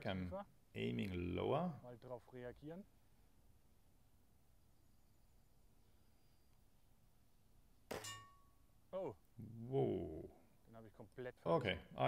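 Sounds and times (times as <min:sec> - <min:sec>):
air rifle shot with metallic ring: 0:07.9 - 0:08.5.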